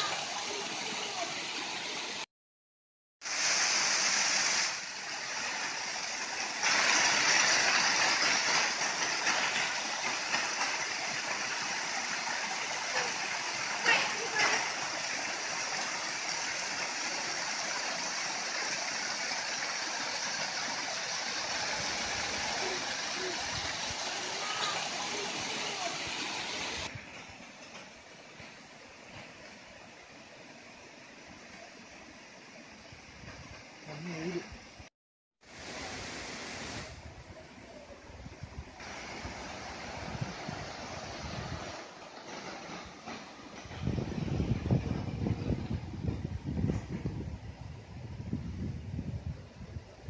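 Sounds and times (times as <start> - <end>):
waterfall rushing and splashing: 0.0 - 2.3, 3.2 - 27.0, 35.4 - 37.7, 38.8 - 43.4.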